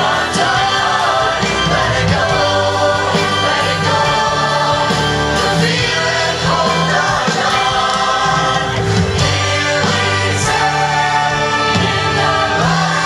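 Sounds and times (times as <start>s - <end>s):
choir singing into microphones: 0.0s - 13.0s
live band playing: 0.0s - 13.0s
sustained bass notes: 0.0s - 13.0s.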